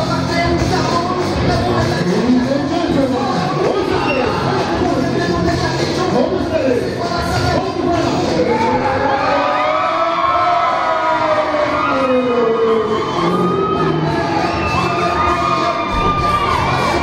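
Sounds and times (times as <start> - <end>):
arena crowd cheering and shouting: 0.0 - 17.0.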